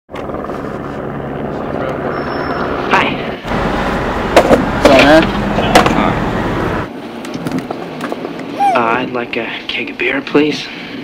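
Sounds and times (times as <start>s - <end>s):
helicopter rotor and engine: 0.1s - 6.9s.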